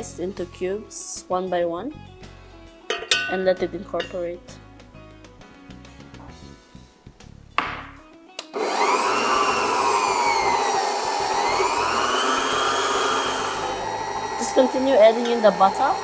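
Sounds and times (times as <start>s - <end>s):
stand mixer motor whine: 8.6s - 16.0s.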